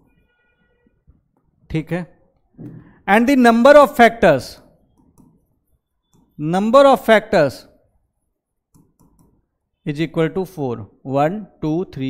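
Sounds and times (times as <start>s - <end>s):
man talking: 1.7s - 2.2s, 3.0s - 4.6s, 6.4s - 7.7s, 9.9s - 12.0s
stylus tapping on glass touchscreen: 8.8s - 9.4s.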